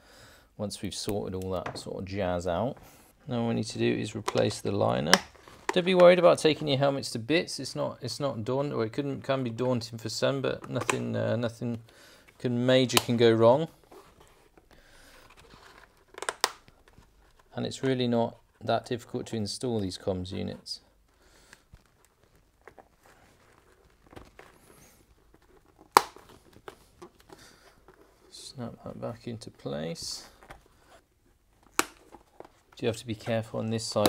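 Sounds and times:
helmet liner rustling: 0:01.1 - 0:06.8, 0:09.5 - 0:18.8, 0:20.9 - 0:34.0.

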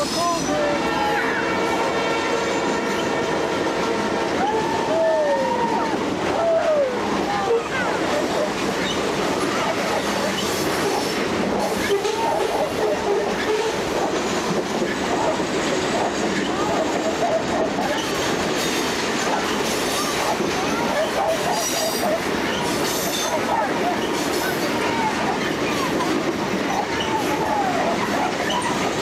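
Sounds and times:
steel wheels rumbling on rail: 0:00.0 - 0:29.0.

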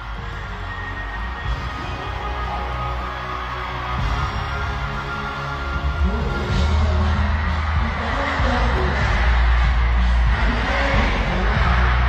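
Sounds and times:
afrobeats music over sound system: 0:00.0 - 0:12.0.

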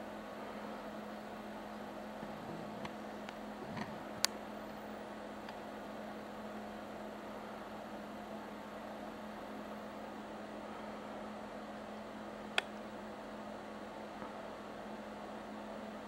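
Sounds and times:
low hum with hiss: 0:00.0 - 0:16.0.

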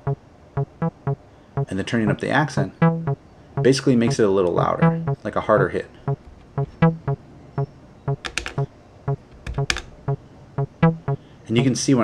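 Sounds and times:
analog bass synth acid pattern: 0:00.0 - 0:01.7, 0:02.8 - 0:04.2, 0:04.8 - 0:05.2, 0:06.6 - 0:07.2, 0:08.1 - 0:11.2
step buttons clicking: 0:08.1 - 0:09.9.

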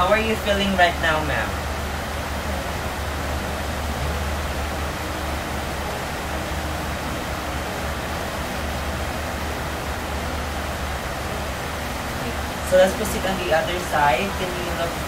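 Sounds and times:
even hiss: 0:00.0 - 0:15.0
low hum: 0:00.0 - 0:15.0.

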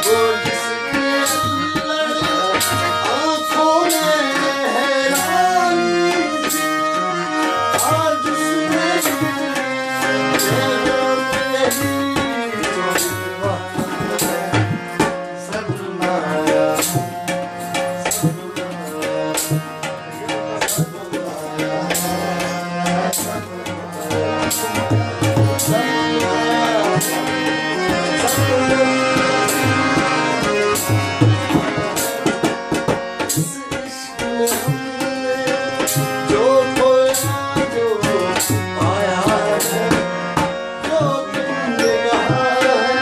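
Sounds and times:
harmonium chords: 0:00.0 - 0:43.0
man singing: 0:00.0 - 0:43.0.

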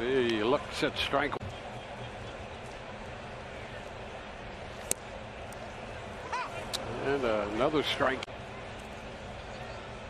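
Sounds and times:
crowd murmuring: 0:01.3 - 0:10.0.

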